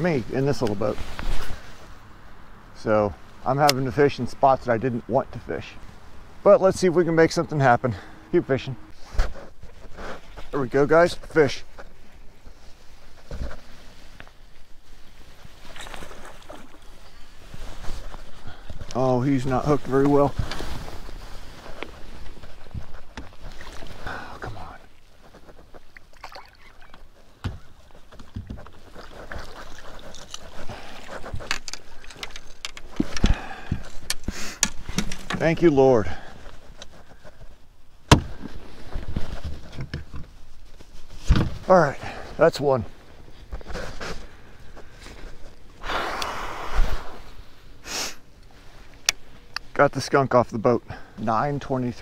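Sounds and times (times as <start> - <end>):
short rustle: 0.2 - 2.0, 7.2 - 50.2
person exhaling breathily: 24.0 - 24.6, 45.8 - 48.2.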